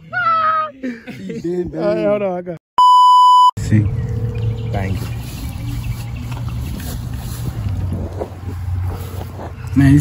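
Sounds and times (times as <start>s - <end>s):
wind buffeting microphone: 5.1s - 9.8s.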